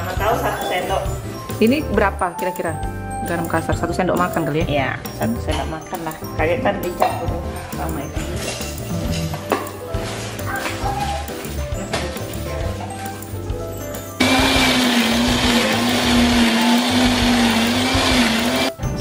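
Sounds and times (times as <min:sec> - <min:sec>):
background music: 0:00.0 - 0:19.0
electric blender motor running: 0:14.2 - 0:18.8.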